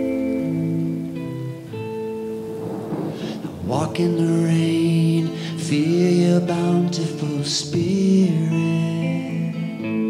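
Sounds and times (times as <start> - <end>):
acoustic and electric guitar: 0.0 - 10.0.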